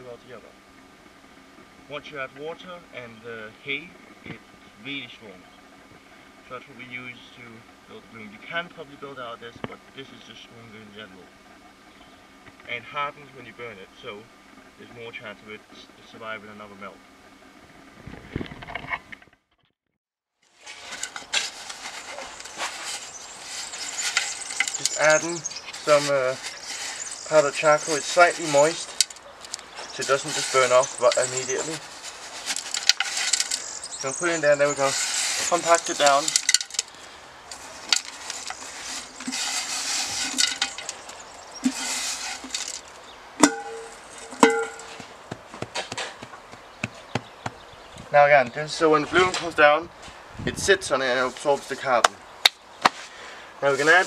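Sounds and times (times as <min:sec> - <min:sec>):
clay soil handled by hand: 0:20.5 - 0:49.6, 0:51.1 - 0:52.2, 0:53.6 - 0:54.0
charcoal shaken from metal can: 0:20.6 - 0:36.9, 0:37.5 - 0:45.0
sharp metallic knocks: 0:43.4 - 0:47.6.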